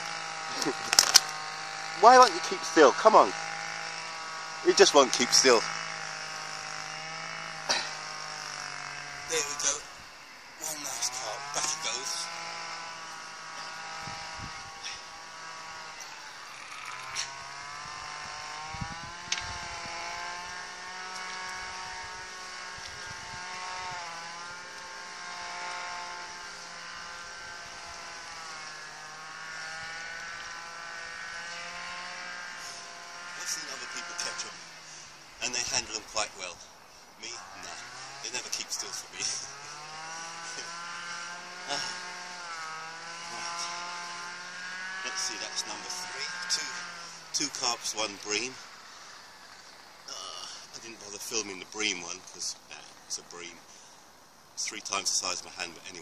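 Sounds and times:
rustles: 0:00.0 - 0:02.8, 0:13.0 - 0:56.0
small engine running: 0:00.0 - 0:56.0.

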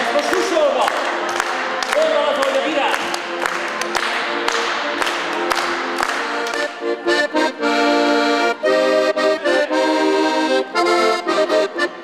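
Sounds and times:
accordion dance tune: 0:00.0 - 0:12.0
hand claps on the beat: 0:00.2 - 0:07.4.

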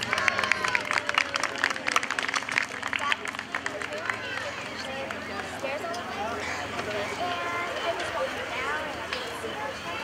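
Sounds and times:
audience applauding: 0:00.0 - 0:05.4.

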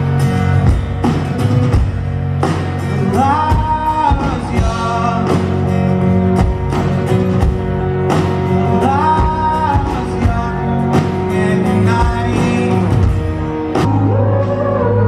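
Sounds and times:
acoustic and electric guitars: 0:00.0 - 0:15.0
person singing: 0:02.9 - 0:05.8, 0:08.6 - 0:13.2, 0:13.8 - 0:15.0.

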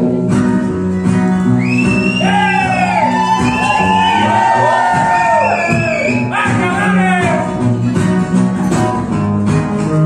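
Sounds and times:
acoustic guitars strummed: 0:00.0 - 0:10.0.

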